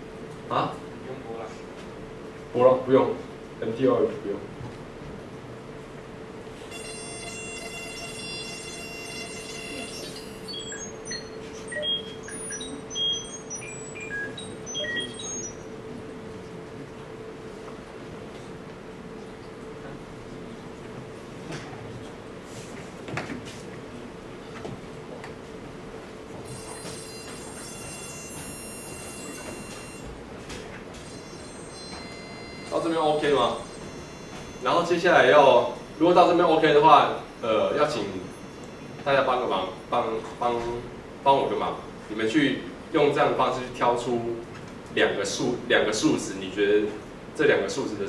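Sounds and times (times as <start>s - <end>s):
buzzy electronic tone: 6.6s - 15.7s, 26.4s - 30.1s, 31.0s - 40.3s
short high beeps: 6.6s - 15.7s, 26.4s - 30.1s, 30.9s - 40.4s
steady sine tone: 6.6s - 16.0s, 26.3s - 30.2s, 30.9s - 41.0s.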